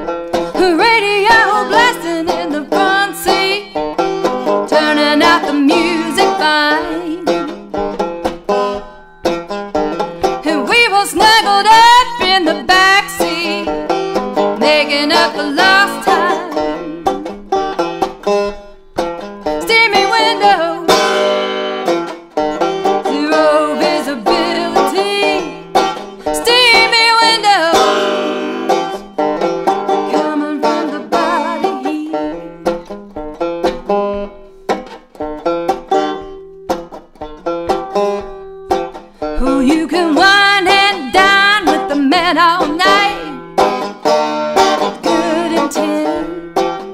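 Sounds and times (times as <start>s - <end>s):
banjo picking: 0.0s - 46.9s
person singing: 0.5s - 3.8s, 4.4s - 7.5s, 10.2s - 13.7s, 14.6s - 17.3s, 19.6s - 21.2s, 23.0s - 29.2s, 30.0s - 32.4s, 39.3s - 43.5s, 44.8s - 46.5s.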